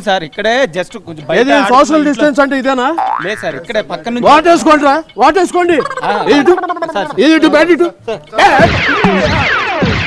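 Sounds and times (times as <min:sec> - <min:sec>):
men talking loudly: 0:00.0 - 0:10.0
comic boing sound effect: 0:03.0 - 0:03.6, 0:08.4 - 0:10.0.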